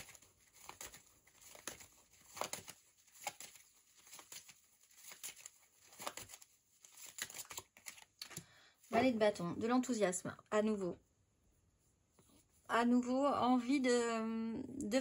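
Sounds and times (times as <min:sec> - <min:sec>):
cards being shuffled by hand: 0:00.0 - 0:09.2.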